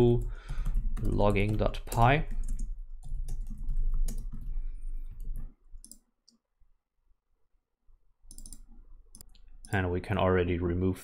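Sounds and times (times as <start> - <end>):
keyboard and mouse clicks: 0.1 - 4.5, 5.1 - 6.4, 8.3 - 9.8.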